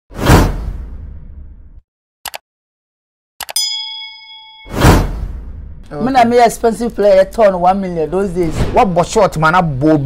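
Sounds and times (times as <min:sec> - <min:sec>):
whoosh sound effect: 0:04.7 - 0:05.8.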